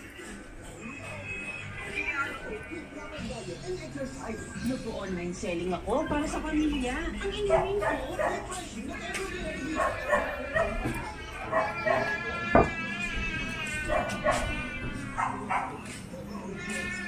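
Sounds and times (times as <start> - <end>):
background music: 0.0 - 17.0
voices: 0.0 - 17.0
dog barking: 7.5 - 8.5, 9.8 - 10.9, 13.9 - 14.5, 15.2 - 15.8.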